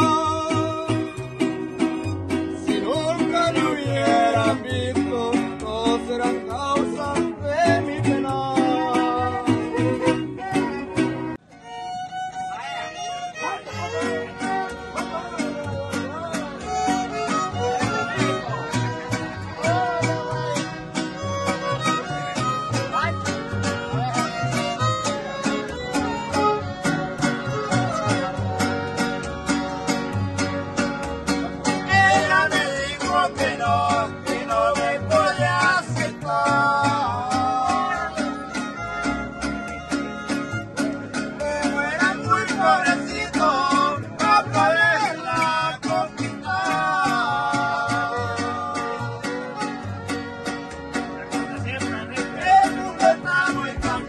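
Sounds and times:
strummed vihuela and guitar: 0:00.0 - 0:54.0
violins playing melody: 0:09.1 - 0:32.4, 0:37.1 - 0:42.3, 0:48.1 - 0:52.1
guitarron bass pulse: 0:13.9 - 0:54.0.

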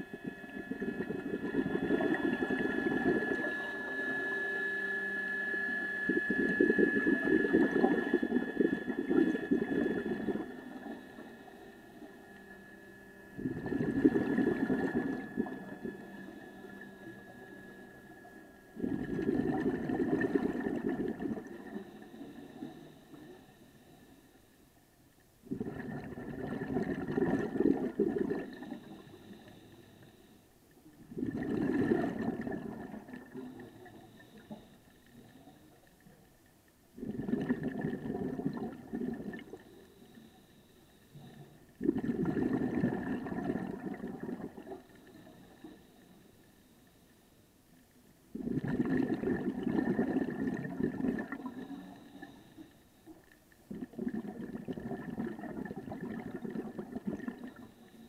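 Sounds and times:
underwater regulator bubbles: 0:00.0 - 0:04.1, 0:06.0 - 0:12.6, 0:13.3 - 0:17.9, 0:18.7 - 0:23.5, 0:25.4 - 0:29.6, 0:30.9 - 0:36.2, 0:37.0 - 0:40.3, 0:41.1 - 0:45.8, 0:48.3 - 0:52.4, 0:53.5 - 0:58.0.

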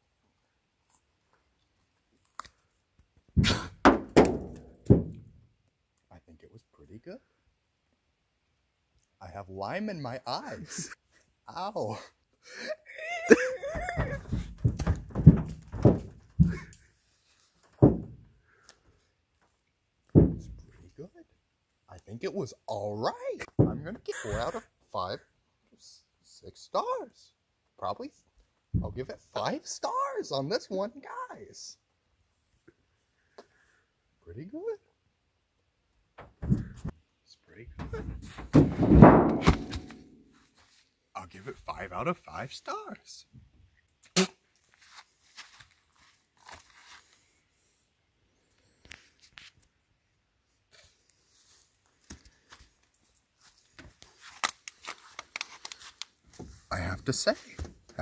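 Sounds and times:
man laughing: 0:10.4 - 0:11.0, 0:11.9 - 0:14.4, 0:16.4 - 0:16.8, 0:23.9 - 0:24.7.

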